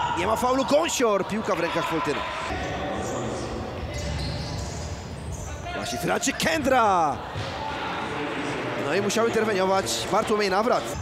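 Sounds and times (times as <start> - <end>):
ball game on indoor court: 0.0 - 11.0
crowd noise: 0.0 - 11.0.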